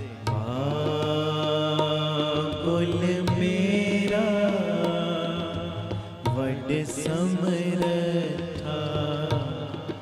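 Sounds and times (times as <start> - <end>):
harmoniums: 0.0 - 10.0
tabla strokes: 0.0 - 10.0.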